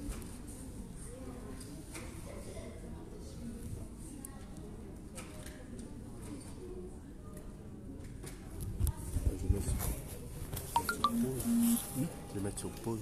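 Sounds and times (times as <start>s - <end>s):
short electronic beeps: 10.8s - 12.0s.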